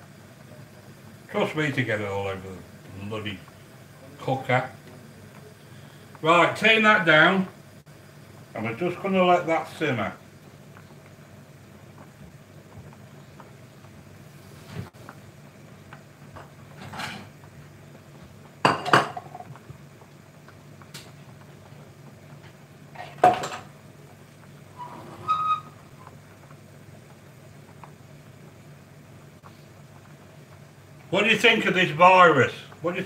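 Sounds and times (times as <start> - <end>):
steady low hum: 0.0 - 33.0
pots and pans clattering: 16.4 - 17.4, 18.6 - 19.6, 22.9 - 23.7.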